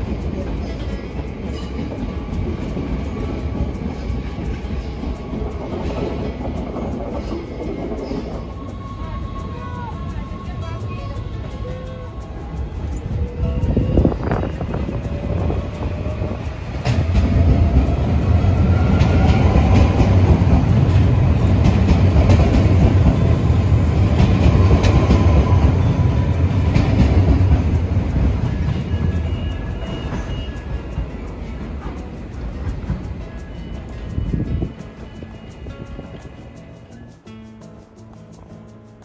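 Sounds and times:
electric train passing: 0.0s - 39.0s
train wheel clicks: 0.0s - 39.0s.

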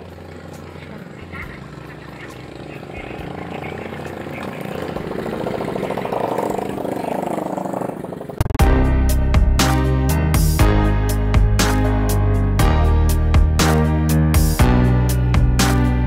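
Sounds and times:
faint voices: 0.0s - 8.2s
engine drone: 0.0s - 16.0s.

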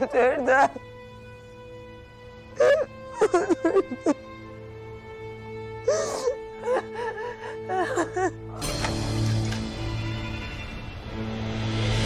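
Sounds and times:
woman sobbing and wailing: 0.0s - 1.0s, 2.4s - 4.7s, 5.7s - 8.7s.

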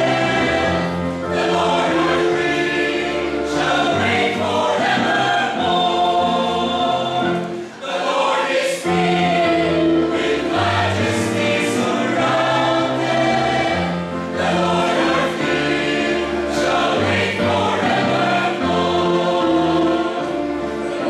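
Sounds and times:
mixed choir singing in harmony: 0.0s - 21.0s.

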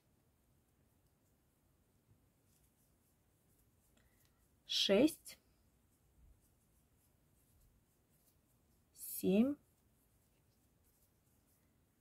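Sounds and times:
yarn and crochet hook rubbing: 2.4s - 12.0s.

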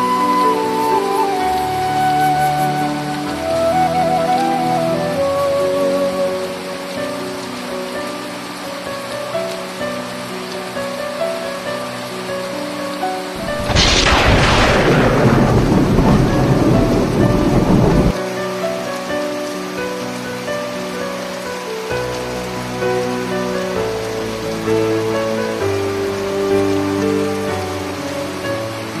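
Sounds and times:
heavy rain on foliage: 0.0s - 29.0s
soft melodic background music: 0.0s - 29.0s
thunderclap rumbling: 13.4s - 18.2s.

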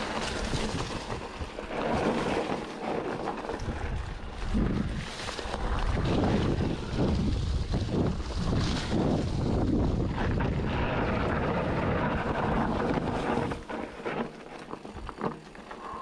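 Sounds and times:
bike knocking and rattling: 0.0s - 16.0s
bike tyres rolling on dirt: 0.0s - 16.0s
wind buffeting microphone: 3.4s - 14.0s.

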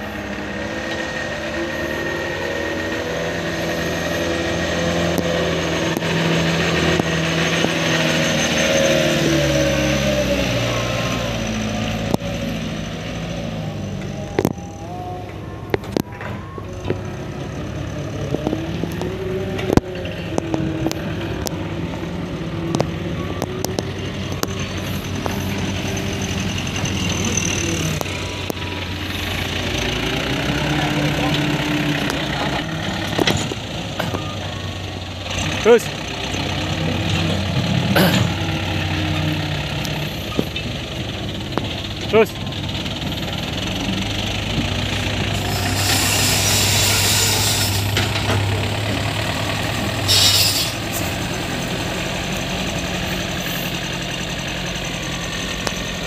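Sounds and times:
truck diesel engine running: 0.0s - 56.0s.

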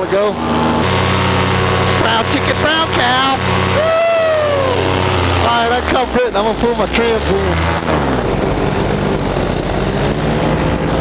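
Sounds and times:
paramotor engine running: 0.0s - 11.0s.

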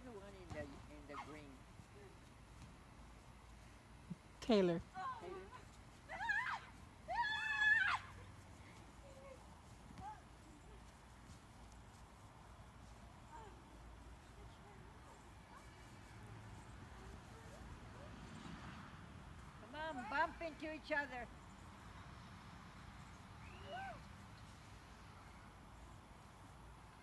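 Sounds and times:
faint outdoor background: 0.0s - 27.0s
young person shrieking: 6.1s - 8.2s.

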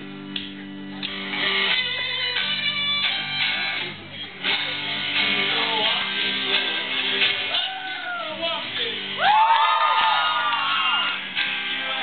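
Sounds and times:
electric guitar: 0.0s - 12.0s
singer's voice: 4.4s - 12.0s.

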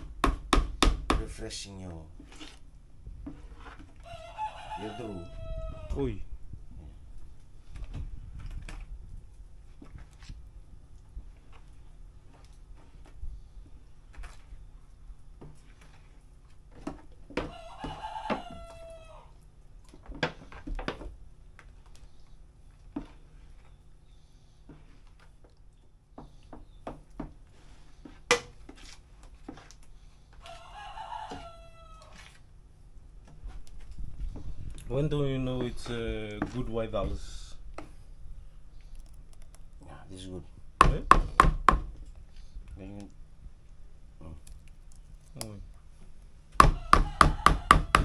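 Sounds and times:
spoon stirring batter in bowl: 2.1s - 4.1s, 35.5s - 38.1s
rooster crowing: 4.0s - 6.1s, 17.4s - 19.4s, 30.4s - 32.3s, 46.6s - 48.0s.

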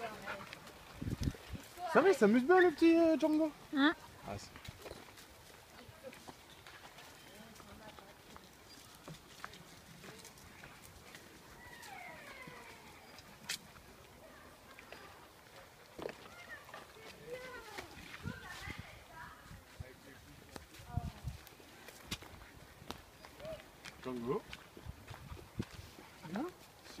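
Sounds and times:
footsteps on dirt path: 0.0s - 27.0s.

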